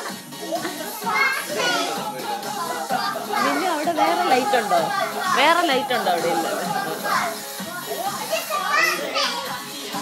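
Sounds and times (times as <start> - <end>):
background music: 0.0 - 10.0
children calling out and singing: 0.3 - 10.0.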